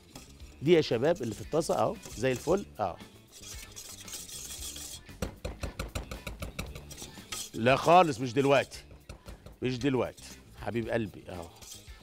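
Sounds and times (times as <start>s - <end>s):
whisk scraping in saucepan: 0.0s - 12.0s
whisk clicking against pan: 0.1s - 10.6s.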